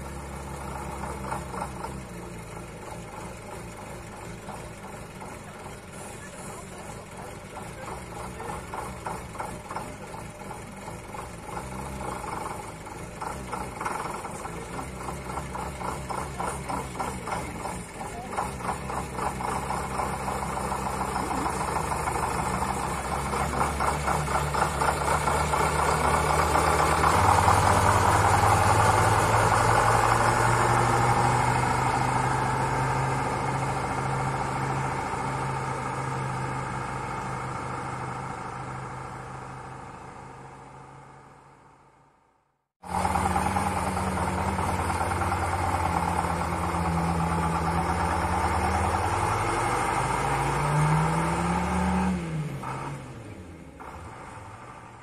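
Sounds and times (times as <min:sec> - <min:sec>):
diesel truck engine accelerating: 0:00.0 - 0:55.0.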